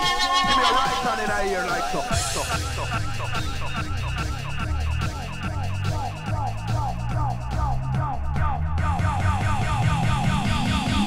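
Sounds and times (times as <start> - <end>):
rising synth sweep: 0.0 - 5.4
siren-like synth riff: 0.0 - 5.9
heavy bass: 0.0 - 11.0.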